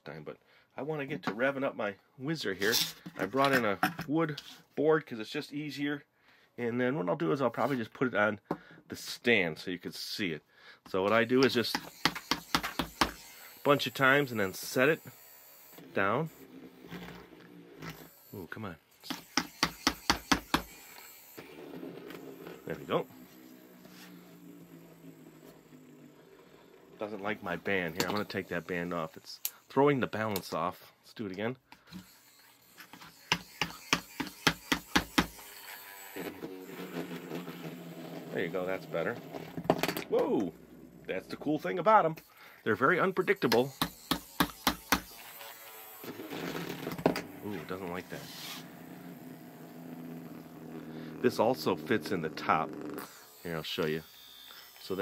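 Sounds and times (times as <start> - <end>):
spinning top humming: 32.0 - 39.7, 43.0 - 55.0.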